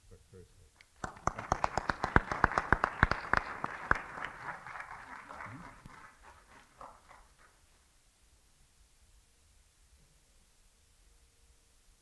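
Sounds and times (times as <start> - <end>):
loud single claps close by: 1.0 - 5.0
audience applauding: 1.0 - 7.9.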